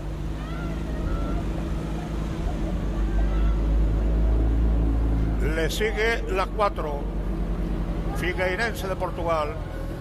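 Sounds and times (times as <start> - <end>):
engine running: 0.0 - 10.0
faint distant voices: 0.1 - 10.0.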